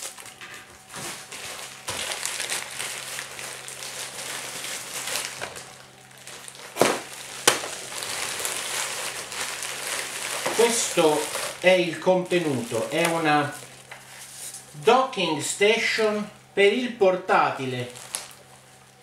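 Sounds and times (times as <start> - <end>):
bubble wrap crinkling and rustling: 0.0 - 14.8, 17.6 - 19.0.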